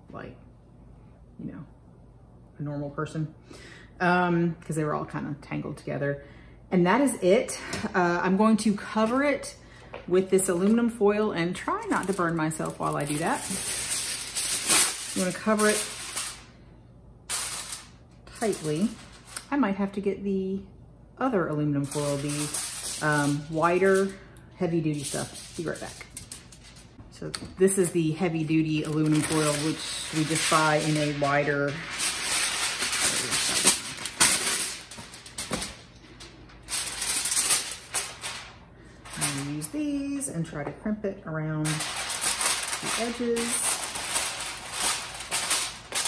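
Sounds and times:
aluminium foil crinkling: 0:11.5 - 0:16.6, 0:17.3 - 0:19.5, 0:21.8 - 0:24.2, 0:24.8 - 0:27.0, 0:27.8 - 0:40.2, 0:41.6 - 0:46.0.

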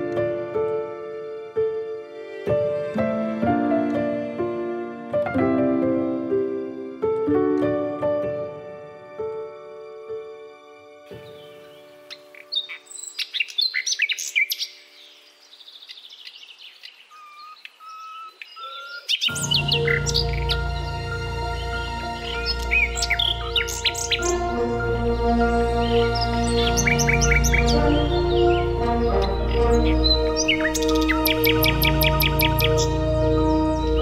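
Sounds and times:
nightingale singing: 0:11.1 - 0:34.0
background music with low bass: 0:19.3 - 0:34.0.

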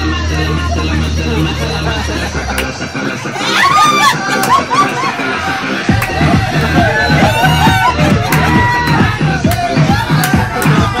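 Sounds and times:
loud dance music: 0:00.0 - 0:11.0.

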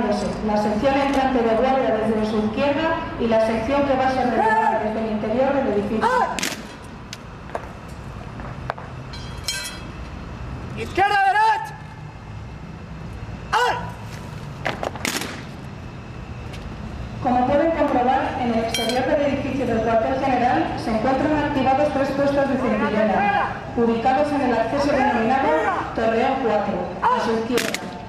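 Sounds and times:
voices: 0:00.0 - 0:06.5, 0:17.1 - 0:28.0
shouted command: 0:06.0 - 0:06.4, 0:10.8 - 0:11.8, 0:13.5 - 0:14.0, 0:22.8 - 0:23.6, 0:27.0 - 0:27.5.

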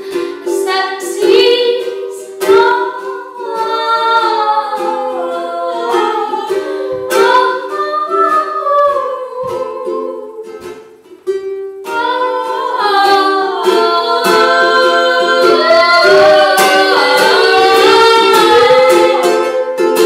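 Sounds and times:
woman singing: 0:00.0 - 0:10.8, 0:11.8 - 0:20.0
ukulele strumming: 0:00.0 - 0:20.0.

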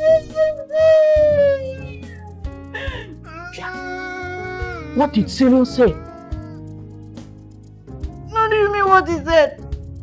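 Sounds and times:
music with held tones: 0:00.0 - 0:10.0
cat meowing: 0:03.3 - 0:06.7.

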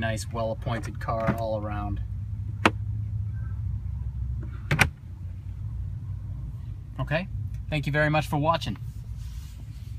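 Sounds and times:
low cabin hum: 0:00.0 - 0:09.9
glovebox lid shutting: 0:04.7 - 0:05.0.

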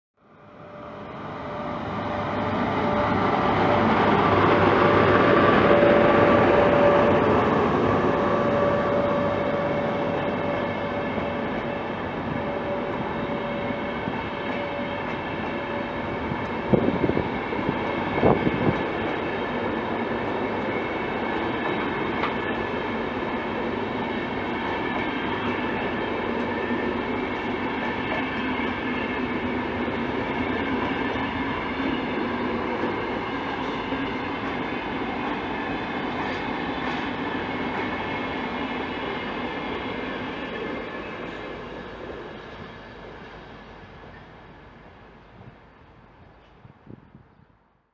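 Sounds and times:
train wheels rumbling on rails: 0:00.4 - 0:47.7.

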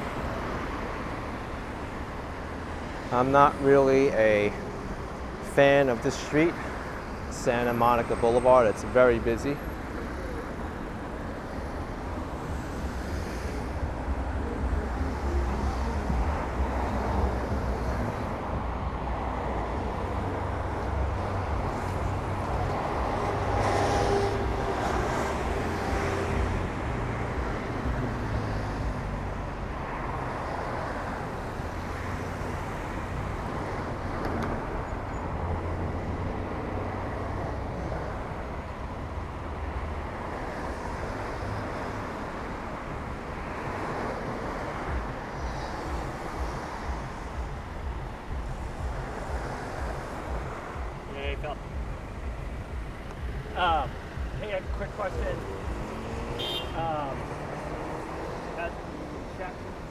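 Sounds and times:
cars driving past: 0:00.0 - 0:59.9
rumble of passing vehicles: 0:00.0 - 0:59.9.

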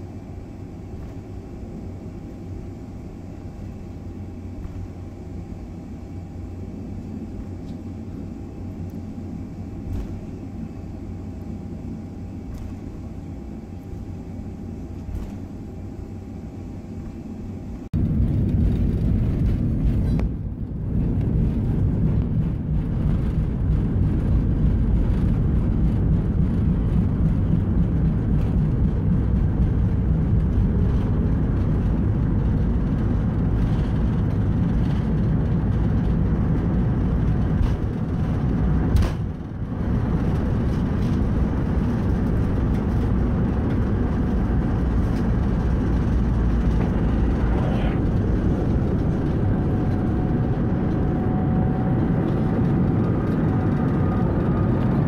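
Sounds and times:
airplane takeoff rumble: 0:00.0 - 0:55.0.

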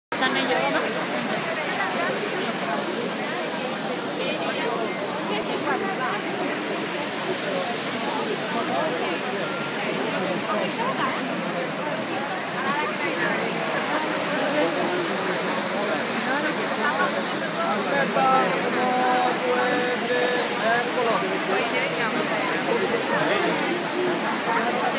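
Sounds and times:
crowd chatter: 0:00.1 - 0:24.9
fountain water rushing: 0:00.1 - 0:24.9.

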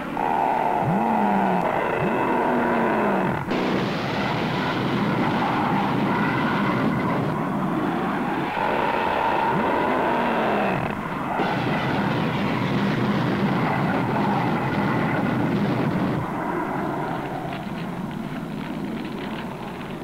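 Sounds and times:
jet aircraft roar: 0:00.0 - 0:20.0.

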